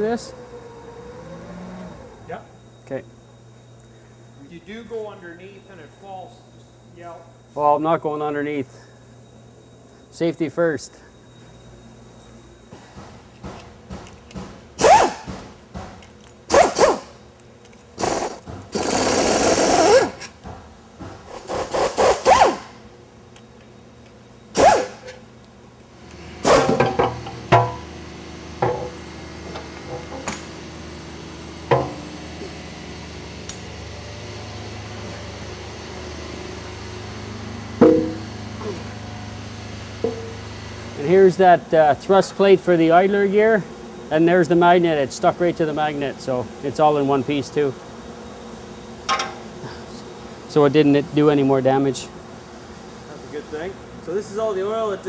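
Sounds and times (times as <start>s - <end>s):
steady low hum: 0.0s - 55.0s
pneumatic air wrench: 13.4s - 17.2s, 18.0s - 20.3s, 21.2s - 22.8s, 24.5s - 25.2s, 26.2s - 27.8s.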